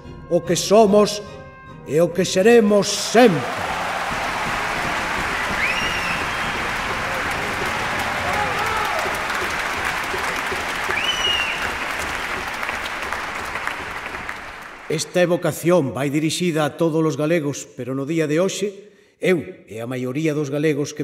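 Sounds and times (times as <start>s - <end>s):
large audience applauding: 3.0s - 15.2s.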